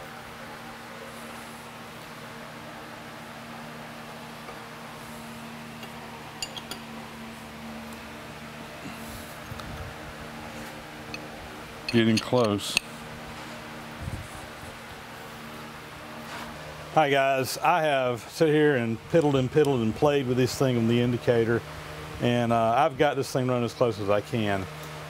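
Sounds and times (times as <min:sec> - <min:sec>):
shop machine humming: 0:00.0 - 0:25.0.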